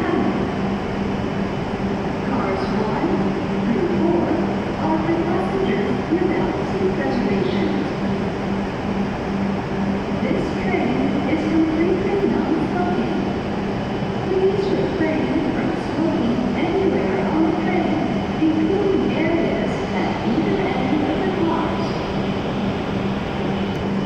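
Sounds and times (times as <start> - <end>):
train equipment low hum: 0.0 - 24.0.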